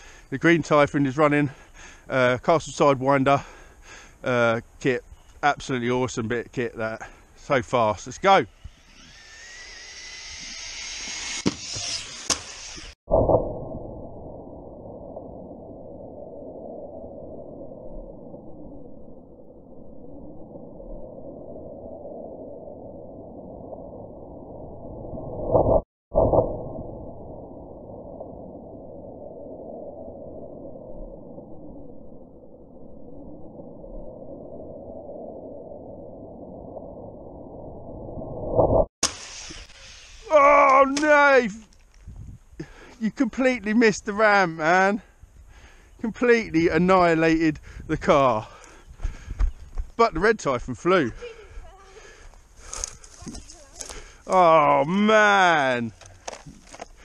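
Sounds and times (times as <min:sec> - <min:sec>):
electric motors whining: 0:08.5 - 0:13.0.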